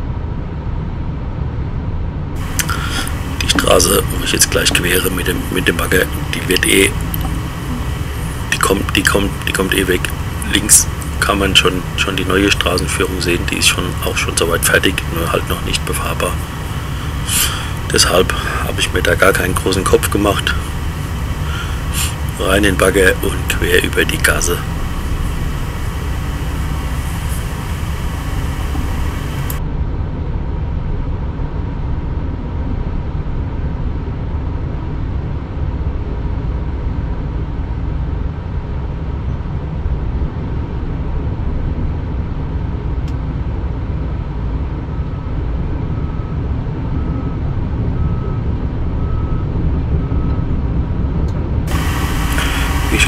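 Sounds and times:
diesel engine rumble: 2.3 - 29.7, 40.0 - 53.0.

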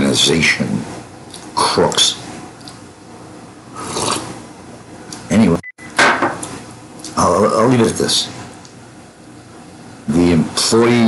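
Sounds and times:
man slurping from a mug: 3.7 - 4.4.

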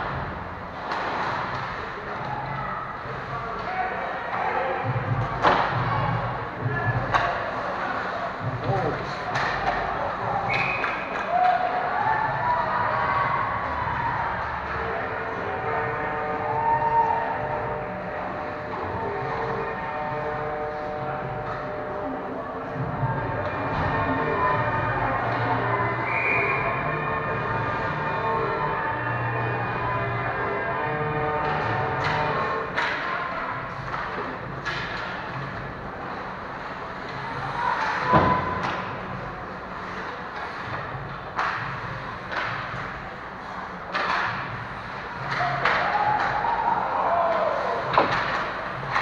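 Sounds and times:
hockey sticks and puck knocking: 6.9 - 7.6, 31.2 - 39.2, 39.8 - 46.6, 47.2 - 49.0
steady droning tone: 13.0 - 49.0.

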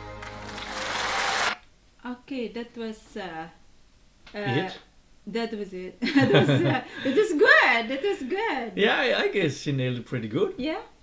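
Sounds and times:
audience applause and cheering: 0.0 - 1.6.

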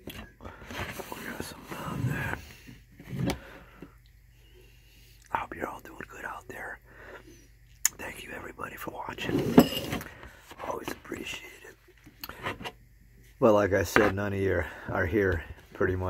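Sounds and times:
man whispering: 0.9 - 2.6, 5.2 - 6.9, 7.8 - 9.6, 10.5 - 12.0.

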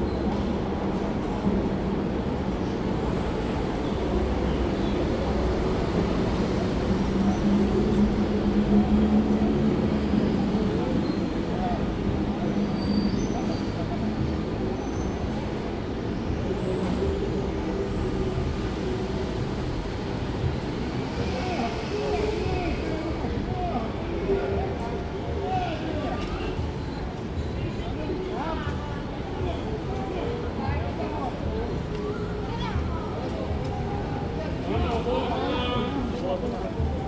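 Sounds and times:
city street traffic: 0.0 - 37.0.

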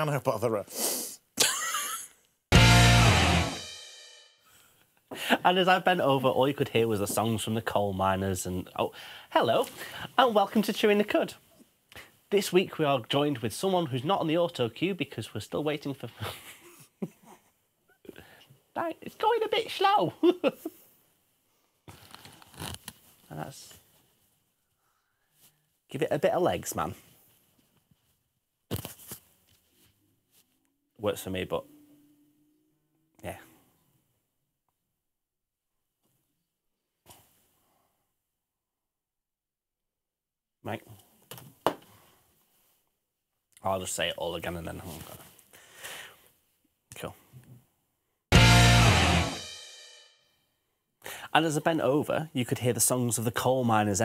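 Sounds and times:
fabric rubbing on lapel microphone: 22.0 - 23.2
soft breath: 24.6 - 25.8, 45.5 - 46.4.

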